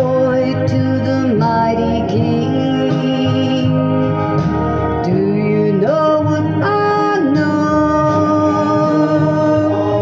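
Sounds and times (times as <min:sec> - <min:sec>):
recorded backing music: 0:00.0 - 0:10.0
woman singing into microphone: 0:00.0 - 0:10.0.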